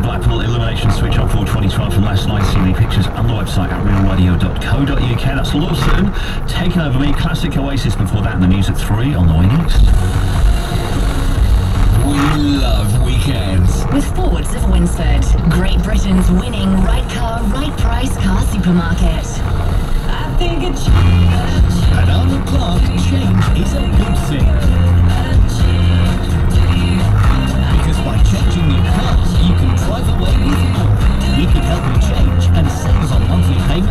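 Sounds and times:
car engine drone: 0.0s - 33.9s
tyre roar: 9.3s - 20.0s.

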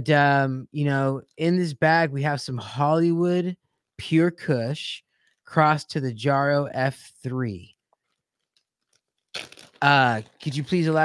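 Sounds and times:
man speaking: 0.0s - 7.7s, 9.8s - 11.0s.

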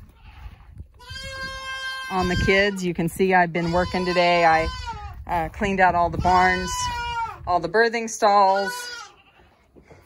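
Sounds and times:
goat kid bleating: 1.0s - 2.8s, 3.6s - 5.2s, 6.2s - 7.5s, 8.5s - 9.5s.

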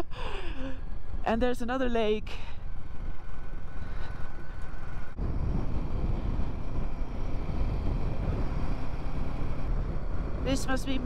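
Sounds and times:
wind rush on microphone: 2.8s - 11.0s.

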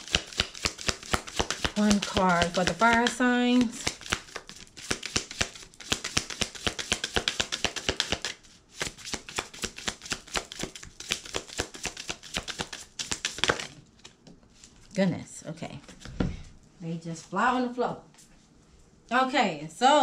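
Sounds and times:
cards being shuffled: 0.0s - 14.9s.

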